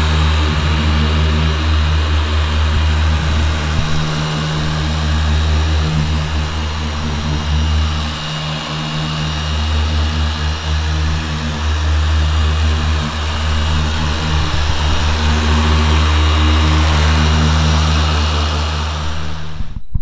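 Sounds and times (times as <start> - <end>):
polisher motor hum and whine: 0.0 - 19.8.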